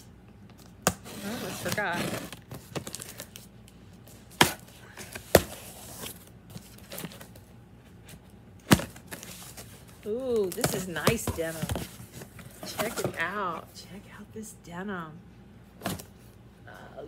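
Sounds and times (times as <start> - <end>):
cardboard rustling and scraping: 0.6 - 13.7.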